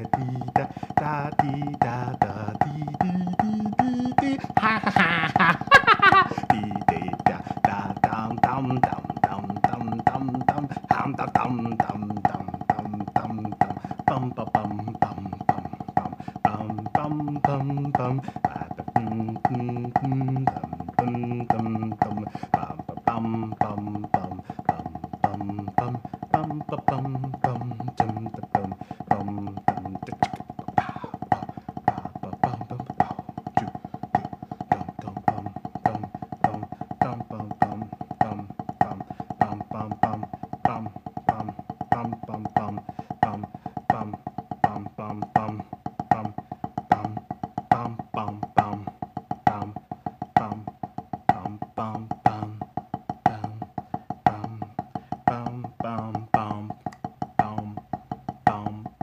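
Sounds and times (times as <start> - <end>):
backing track with bass: 0.0 - 59.0
drumsticks on practice pad: 0.0 - 59.0.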